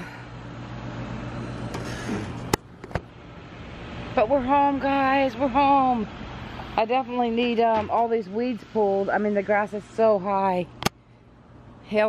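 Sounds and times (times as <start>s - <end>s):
pool pump motor humming: 0.0s - 12.0s.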